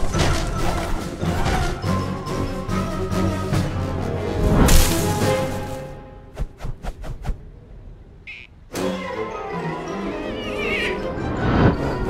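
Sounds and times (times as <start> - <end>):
orchestral film score: 0.0 - 6.6, 7.6 - 12.0
cartoon whoosh of branch: 4.4 - 5.7.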